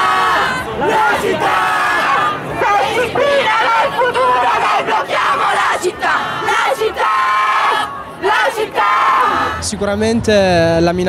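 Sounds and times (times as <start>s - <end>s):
crowd chanting slogans: 0.0s - 9.8s.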